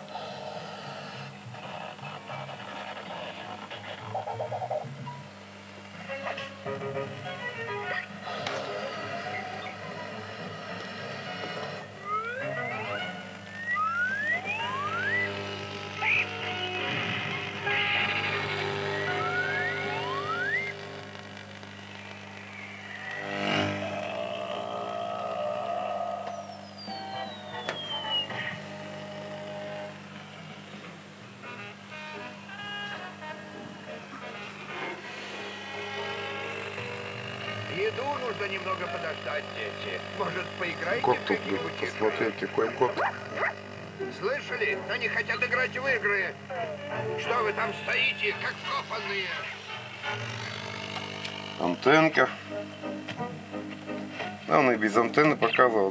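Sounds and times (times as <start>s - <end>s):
steady low hum: 0.0s - 55.9s
cartoon music on television: 1.7s - 5.2s, 6.0s - 21.0s, 25.7s - 29.9s, 31.5s - 36.9s, 44.2s - 50.2s, 52.4s - 54.4s
whistle glides: 12.0s - 15.4s, 18.9s - 20.8s, 22.4s - 25.4s, 26.2s - 28.7s.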